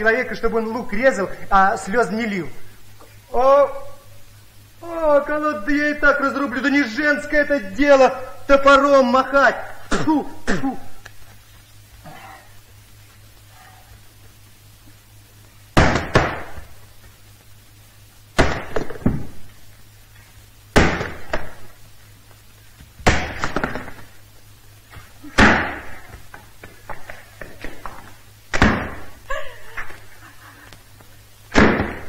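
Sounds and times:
axe striking wood: 15.8 - 16.6, 18.4 - 19.3, 20.8 - 21.6, 23.0 - 23.9, 25.4 - 25.9, 28.5 - 29.0, 31.5 - 32.0
rattle of splitting wood: 15.8 - 16.6, 18.4 - 19.4, 20.7 - 21.6, 23.0 - 24.1, 25.3 - 26.0, 31.5 - 32.0.

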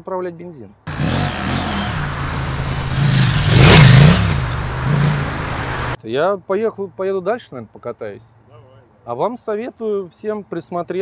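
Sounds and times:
motorcycle engine revving past: 0.9 - 6.0.

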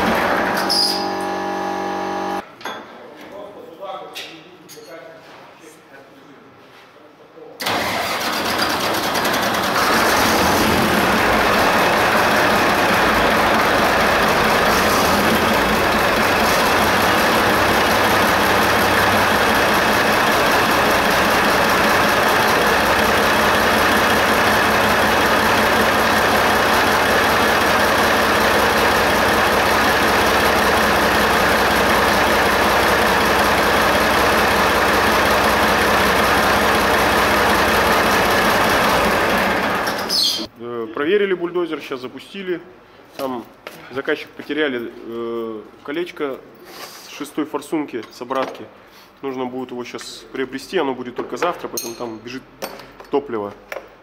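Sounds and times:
bulldozer diesel engine running: 0.0 - 2.4, 7.7 - 40.1.

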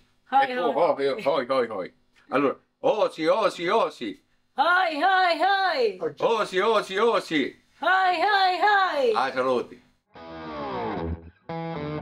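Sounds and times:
distorted electric guitar slide: 10.1 - 12.0.

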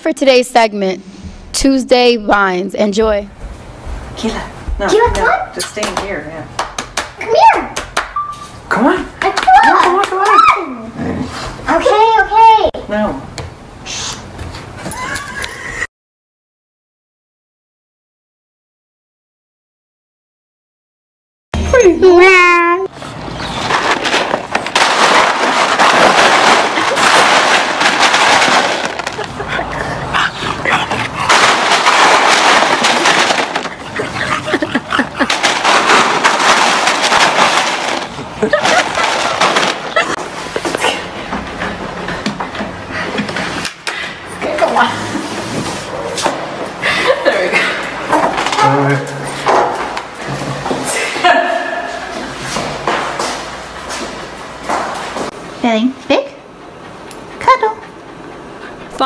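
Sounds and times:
ice cubes crunching and clattering: 23.6 - 29.6, 31.2 - 40.2.

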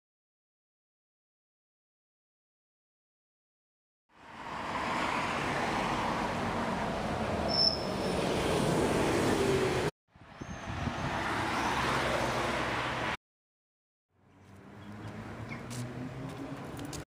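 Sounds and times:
street traffic: 4.1 - 13.2, 14.1 - 17.0
short high squeak: 7.5 - 8.2.

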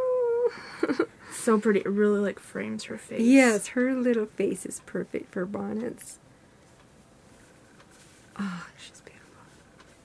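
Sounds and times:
woman murmuring: 0.0 - 1.5, 8.4 - 9.0
faint fabric rustling: 6.6 - 10.0.

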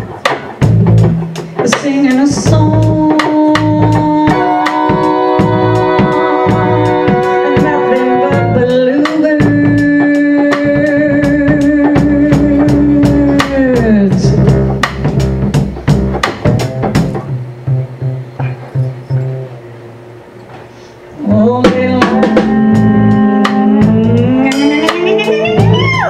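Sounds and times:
upright double bass: 0.0 - 20.1, 21.2 - 26.0
drums: 0.0 - 26.0
woman singing a long note: 2.0 - 14.4, 21.2 - 26.0.

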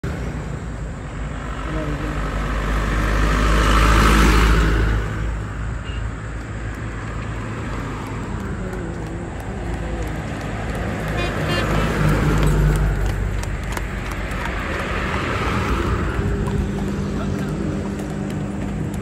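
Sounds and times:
road traffic: 0.0 - 19.0
truck passing by: 0.0 - 19.0
fast clattering of horse carts: 5.6 - 19.0.

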